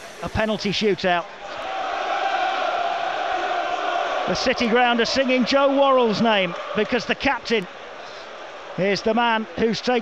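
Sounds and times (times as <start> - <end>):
stadium crowd chanting: 1.4 - 8.8.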